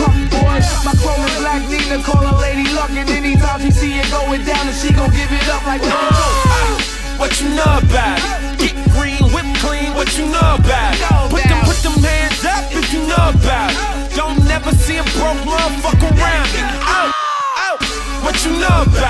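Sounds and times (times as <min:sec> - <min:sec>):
vocals over hip hop beat: 0:00.0 - 0:19.0
person laughing: 0:05.8 - 0:06.8.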